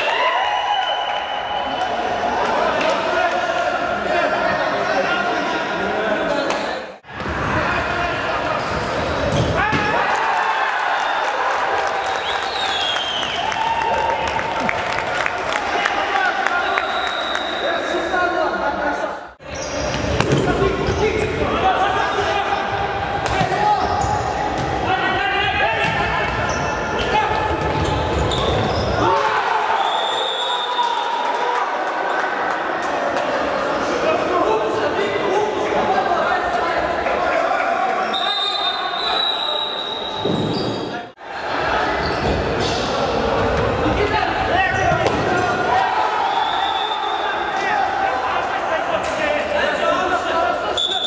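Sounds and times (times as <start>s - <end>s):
players' voices echoing: 1.2s - 51.0s
players shouting: 43.0s - 51.0s.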